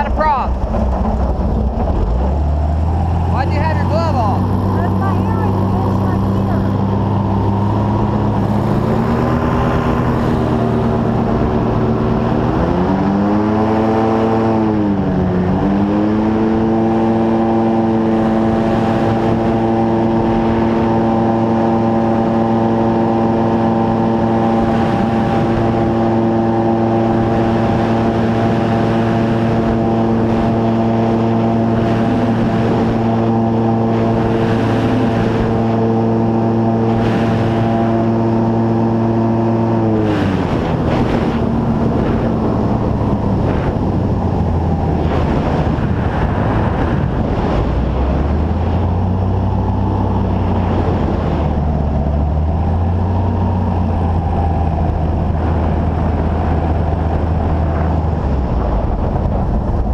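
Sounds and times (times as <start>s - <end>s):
airboat engine and propeller: 0.0s - 59.9s.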